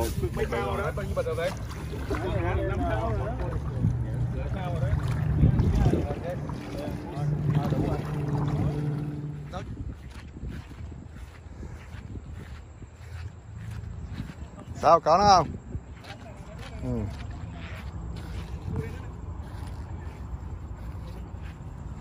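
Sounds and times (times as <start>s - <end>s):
indistinct voices talking: 0.0s - 10.3s
steady low hum: 0.0s - 14.8s
wind on microphone: 0.0s - 16.4s.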